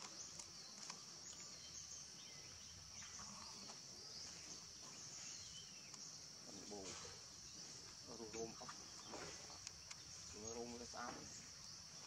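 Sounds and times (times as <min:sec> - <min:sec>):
high insect drone: 0:00.0 - 0:12.0.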